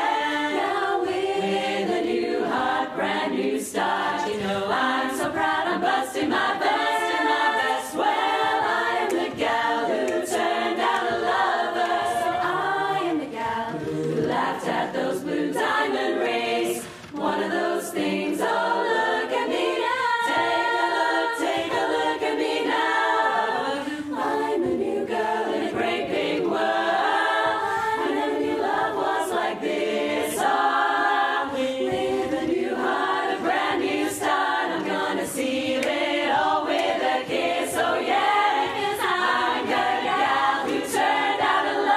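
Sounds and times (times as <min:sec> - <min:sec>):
women's chorus singing a cappella: 0:00.0 - 0:41.9.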